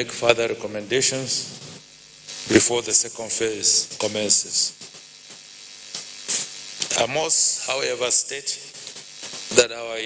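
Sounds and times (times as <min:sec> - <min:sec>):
short hiss: 0:01.5 - 0:03.0, 0:03.6 - 0:09.6.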